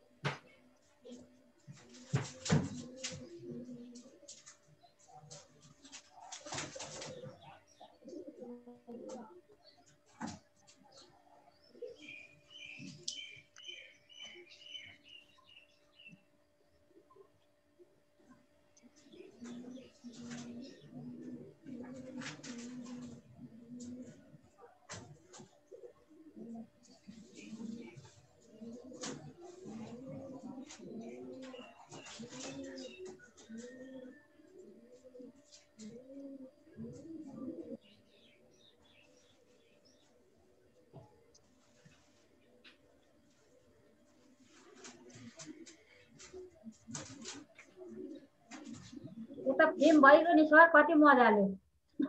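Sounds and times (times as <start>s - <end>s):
doves cooing: 0.0s - 51.0s
irregular outdoor sounds: 0.0s - 52.0s.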